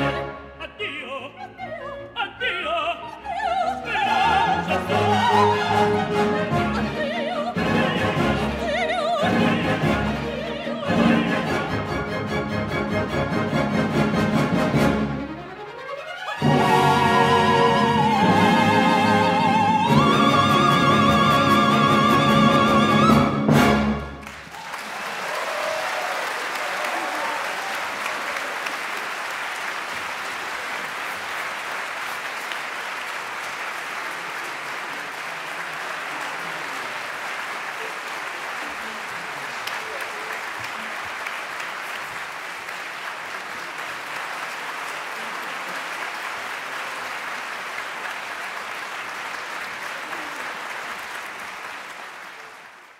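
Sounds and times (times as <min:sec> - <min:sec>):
audience applauding: 0:24.0 - 0:52.9.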